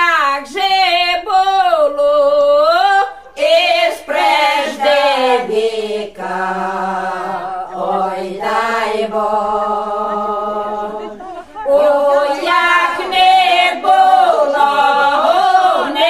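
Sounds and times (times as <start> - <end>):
women singing a cappella: 0.0 - 16.0.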